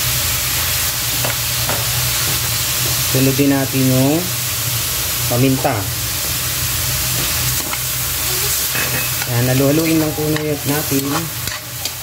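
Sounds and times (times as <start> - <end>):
meat sizzling in a wok: 0.0 - 12.0.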